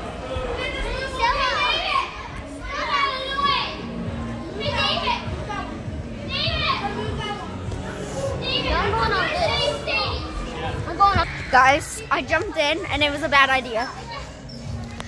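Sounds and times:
background din of voices: 0.0 - 15.0
children yelling and shrieking: 0.4 - 3.9, 4.6 - 7.5, 8.1 - 12.1.

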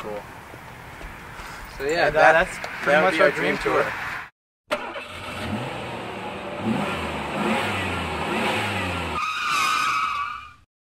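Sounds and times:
engine rumbling: 0.0 - 9.2
tyre squeal: 9.2 - 10.6.

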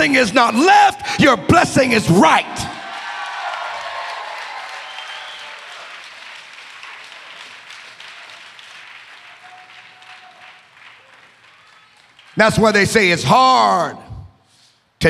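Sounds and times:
congregation applauding: 2.2 - 13.2.

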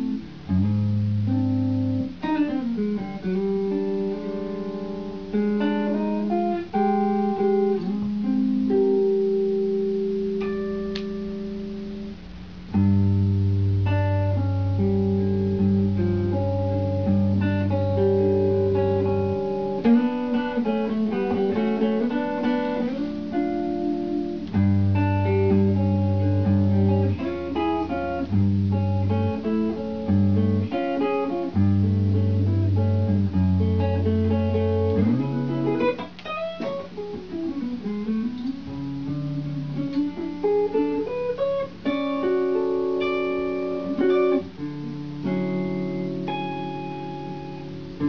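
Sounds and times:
electric guitar with effects: 0.0 - 48.0.

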